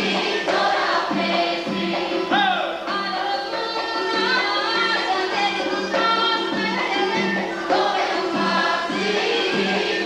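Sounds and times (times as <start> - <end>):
instrumental accompaniment: 0.0 - 10.0
voices singing together: 0.0 - 10.0.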